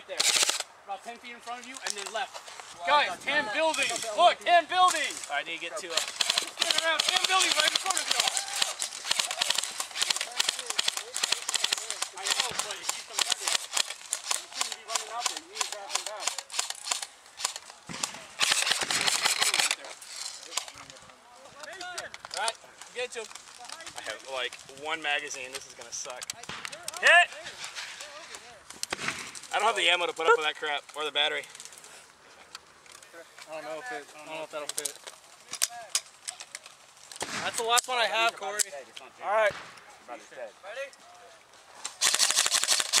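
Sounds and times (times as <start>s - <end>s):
airsoft guns firing in bursts: 0.1s - 0.7s, 5.8s - 19.8s, 28.9s - 29.7s, 37.2s - 37.8s, 42.0s - 43.0s
magazine clicking into rifle: 5.9s - 19.8s, 41.8s - 43.0s.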